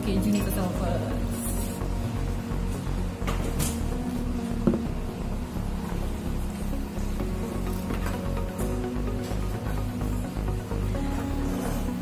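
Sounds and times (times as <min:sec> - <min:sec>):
music with repeating bass beat: 0:00.0 - 0:12.0.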